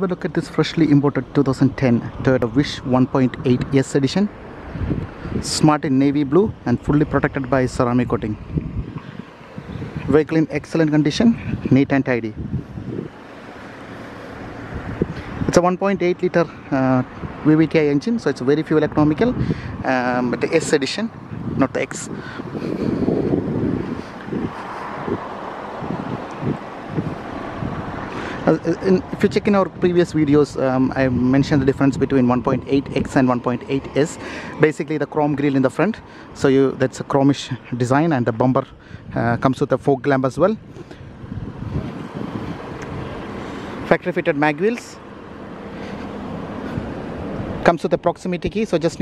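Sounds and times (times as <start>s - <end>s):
low vehicle hum: 0.0s - 49.0s
wind buffeting microphone: 0.0s - 49.0s
footsteps on asphalt: 22.3s - 28.1s, 44.6s - 47.6s.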